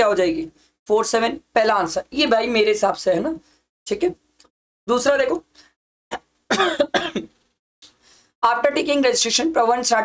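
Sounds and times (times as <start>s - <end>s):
man clearing throat with coughs: 6.1s - 7.3s.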